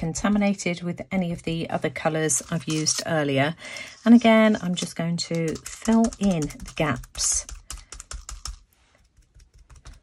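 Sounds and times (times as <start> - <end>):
sponge tapping on paper: 5.3 - 8.5.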